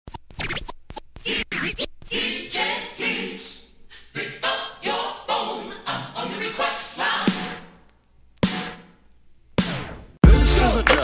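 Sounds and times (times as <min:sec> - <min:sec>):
turntable scratching: 0:00.1 - 0:03.6, 0:04.2 - 0:09.0, 0:09.6 - 0:11.0.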